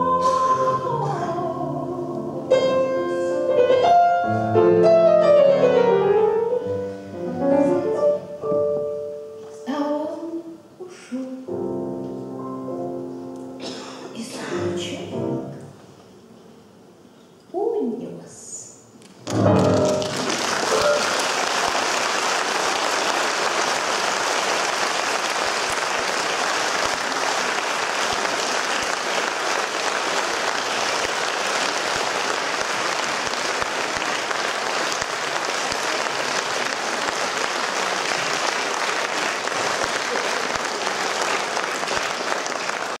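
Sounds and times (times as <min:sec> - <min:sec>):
audience applauding: 0:19.2 - 0:43.0.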